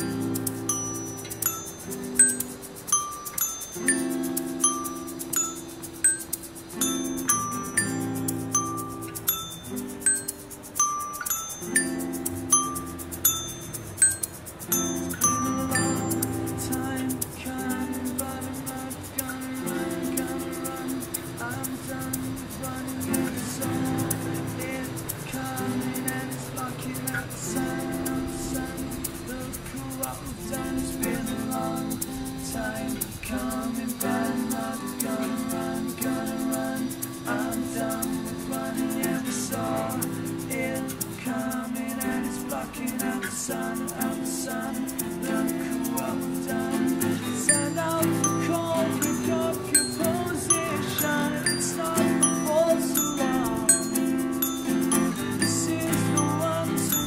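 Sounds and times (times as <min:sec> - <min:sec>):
toy xylophone notes: 0:00.0 - 0:29.4, 0:30.0 - 0:57.0
strummed acoustic guitars: 0:00.0 - 0:57.0
harmonica chords: 0:47.4 - 0:57.0.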